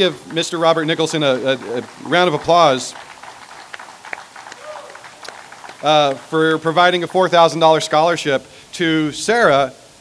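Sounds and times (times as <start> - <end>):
person speaking: 0.0 - 3.0
audience applause: 0.0 - 7.2.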